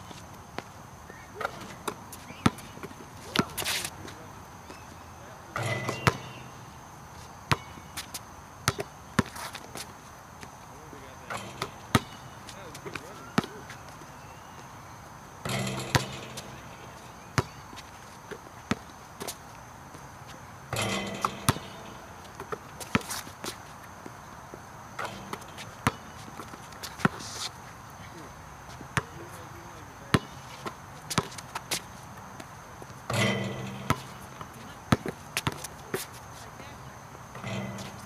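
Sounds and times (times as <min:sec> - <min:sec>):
basketball bouncing on asphalt: 0:01.4 - 0:03.8, 0:05.6 - 0:06.5, 0:07.5 - 0:10.6, 0:11.3 - 0:14.7, 0:15.4 - 0:27.3, 0:30.0 - 0:36.1.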